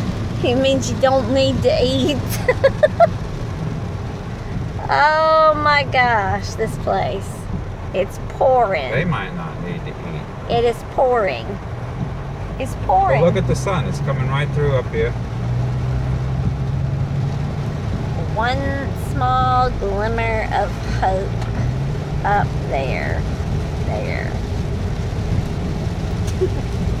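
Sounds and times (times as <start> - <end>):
low engine rumble: 0.0 - 27.0
rain on car roof: 0.0 - 27.0
tyres on wet road: 0.0 - 27.0.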